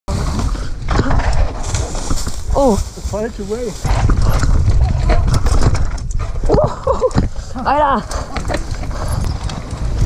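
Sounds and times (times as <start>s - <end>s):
tyres rumbling on dirt trail: 0.1s - 10.0s
wind buffeting: 0.2s - 10.0s.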